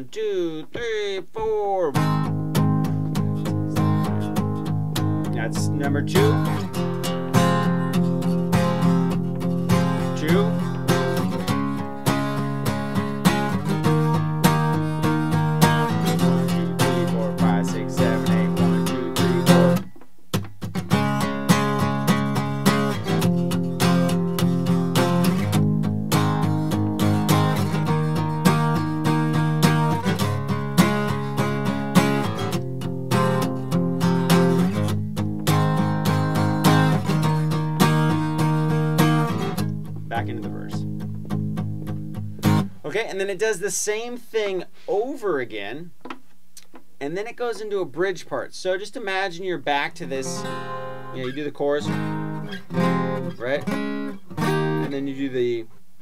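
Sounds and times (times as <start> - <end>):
acoustic guitar strummed: 0.2 - 44.6, 47.2 - 55.8.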